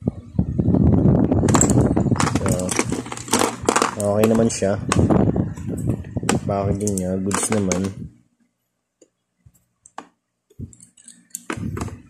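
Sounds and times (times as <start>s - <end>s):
steel tools clinking in plastic case: 1.5s - 4.6s, 6.8s - 8.0s.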